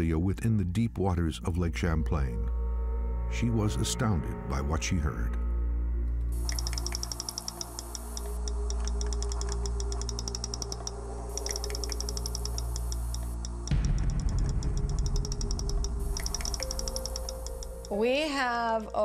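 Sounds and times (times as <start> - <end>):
low music drone: 1.4 - 19.0
sharp underwater clicks: 6.4 - 18.0
rough low crackle: 13.4 - 16.8.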